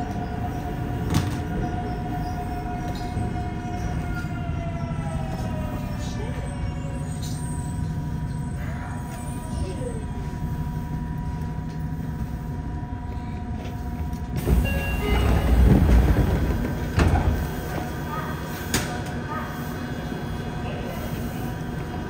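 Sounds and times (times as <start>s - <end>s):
train doors sliding open: 0.0s - 4.4s, 13.7s - 19.2s
train electrical hum: 0.0s - 22.0s
passengers' footsteps: 11.1s - 18.0s.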